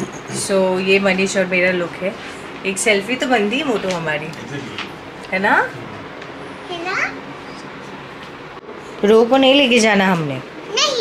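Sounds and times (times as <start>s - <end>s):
room background hiss: 0.0s - 11.0s.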